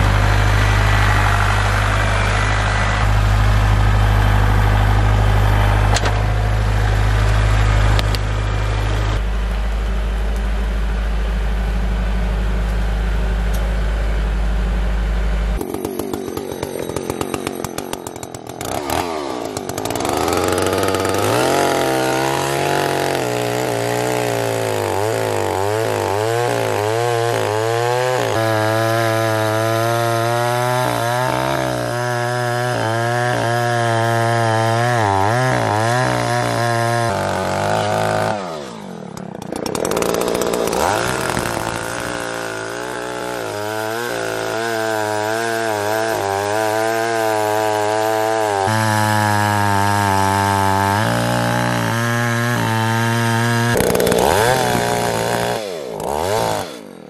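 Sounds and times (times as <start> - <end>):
chainsaw cutting log: 0.0 - 9.6, 15.5 - 57.0
tractor diesel engine: 0.0 - 57.0.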